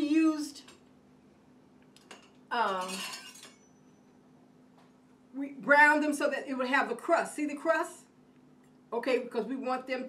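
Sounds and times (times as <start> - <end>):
low steady hum: 0.0 - 10.0
faint ringing clink: 2.1 - 4.2.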